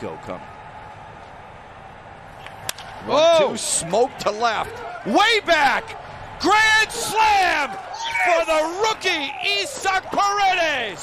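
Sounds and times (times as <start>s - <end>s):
baseball bat cracking ball: 2.4s - 3.0s.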